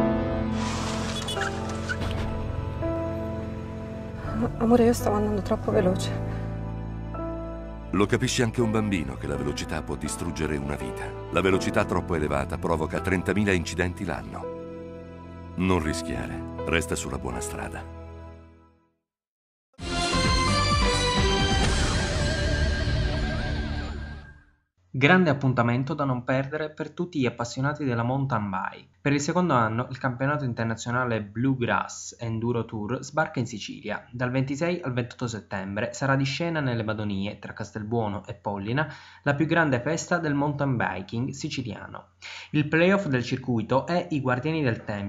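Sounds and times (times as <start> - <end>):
news theme music: 0.0 - 18.4, 19.8 - 24.2.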